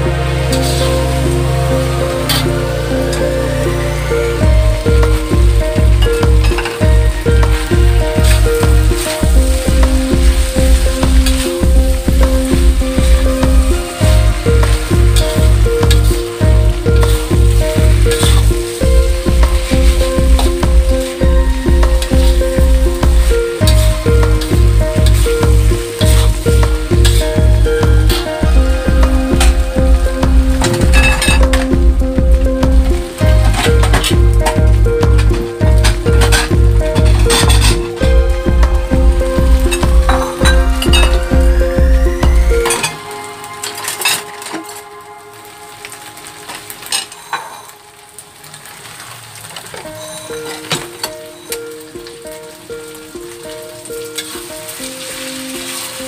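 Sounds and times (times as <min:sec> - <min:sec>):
music with heavy bass beat: 0:00.0 - 0:43.2
noodles sizzling in a wok: 0:00.0 - 0:56.0.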